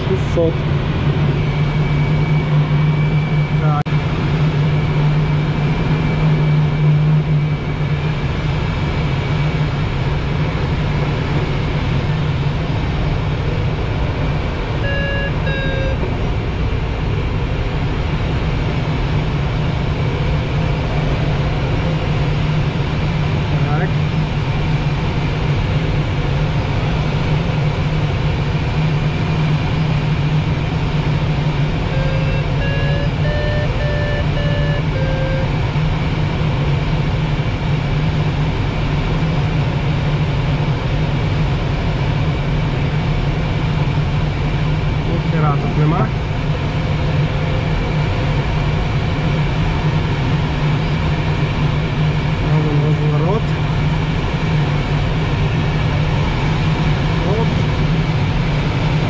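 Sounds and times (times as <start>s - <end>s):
variometer electronic beeps: 14.8s - 16.1s, 31.9s - 35.6s.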